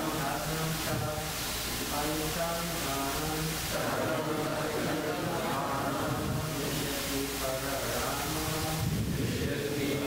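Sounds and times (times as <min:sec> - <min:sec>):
voices chanting: 0:02.0 - 0:08.6.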